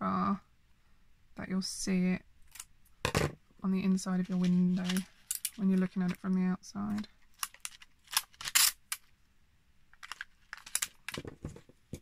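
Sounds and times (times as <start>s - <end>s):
tape ripping off roll: 7.4s - 8.8s
rustling and tapping: 10.0s - 12.0s.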